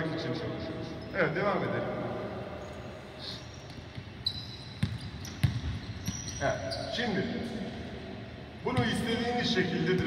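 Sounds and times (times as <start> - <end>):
basketball bouncing on wooden court: 4.8 - 6.4.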